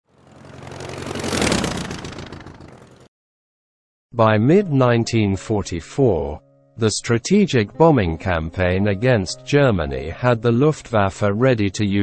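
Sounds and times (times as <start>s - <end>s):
engine passing by: 0.0s - 3.1s.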